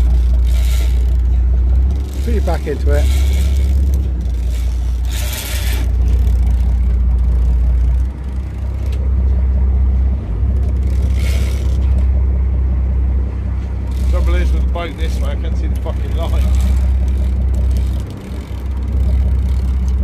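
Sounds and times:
boat engine rumbling: 0:00.0 - 0:20.0.

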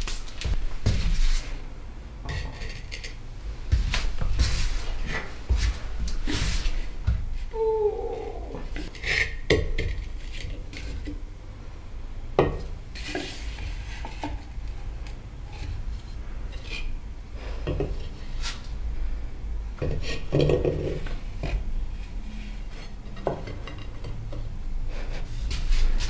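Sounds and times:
clay plates knocking and scraping: 0:19.8 - 0:21.6, 0:23.1 - 0:24.5.

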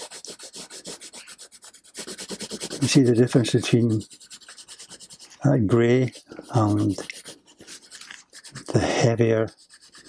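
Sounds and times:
pencil shading on paper: 0:00.0 - 0:10.0.

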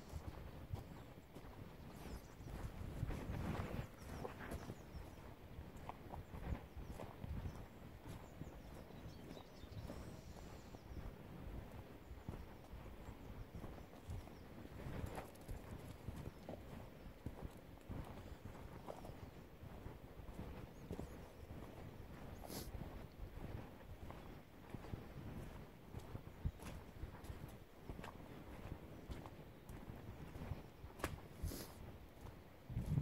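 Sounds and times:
boots tramping on muddy track: 0:00.0 - 0:33.0.

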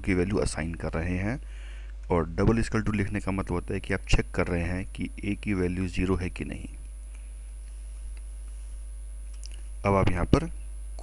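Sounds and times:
man talking: 0:00.0 - 0:01.4, 0:02.1 - 0:06.8, 0:09.8 - 0:10.6
low electrical hum: 0:00.0 - 0:11.0.

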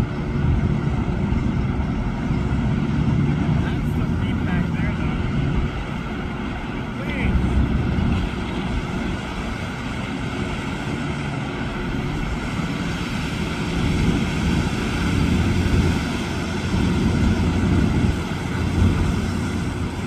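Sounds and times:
truck engine drone: 0:00.0 - 0:20.0
water rushing and splashing: 0:00.0 - 0:20.0.

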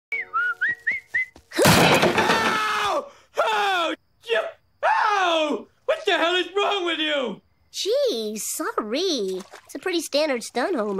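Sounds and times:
person whistling: 0:00.1 - 0:01.5
chair crashing: 0:01.5 - 0:02.8.

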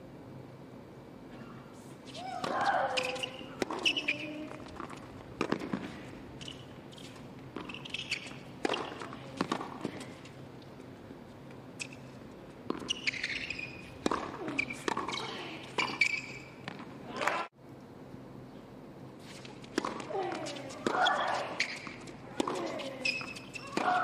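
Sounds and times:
racket striking tennis ball: 0:02.1 - 0:10.1, 0:12.6 - 0:17.4, 0:19.5 - 0:24.0
tennis ball bouncing: 0:02.1 - 0:10.8, 0:11.8 - 0:17.4, 0:19.5 - 0:24.0.

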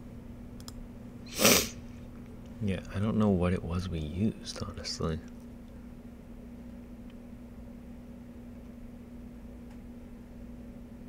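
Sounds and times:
faint low hum: 0:00.0 - 0:11.0
man's sharp burst of breath: 0:01.3 - 0:01.8
man speaking: 0:02.6 - 0:05.3.

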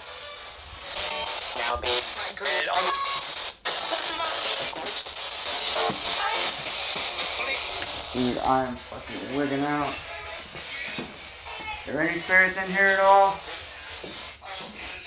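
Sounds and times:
chopped broadcast voices and music: 0:00.0 - 0:15.0
radio static hiss: 0:00.0 - 0:15.0.

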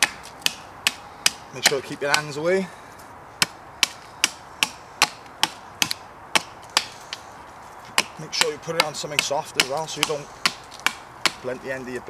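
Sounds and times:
hatchet chopping wood: 0:00.0 - 0:02.4, 0:03.4 - 0:07.3, 0:07.9 - 0:11.6.

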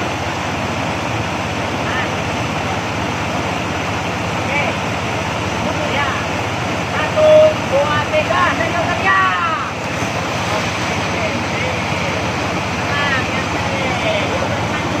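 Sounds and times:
river rapid rushing: 0:00.0 - 0:15.0.

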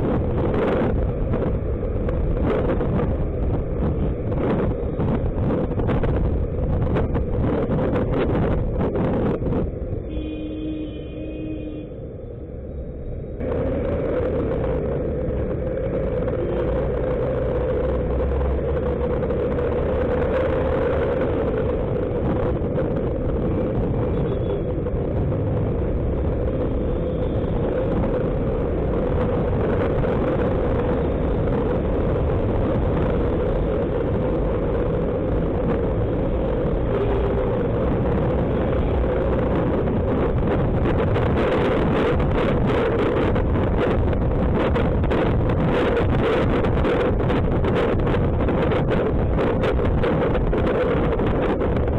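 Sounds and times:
road rumble: 0:00.0 - 0:51.9
wind noise on microphone: 0:00.0 - 0:51.9.

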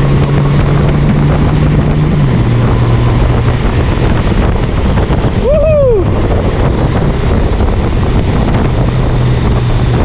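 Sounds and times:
motorcycle engine droning: 0:00.0 - 0:10.0
wind buffeting microphone: 0:00.0 - 0:10.0.

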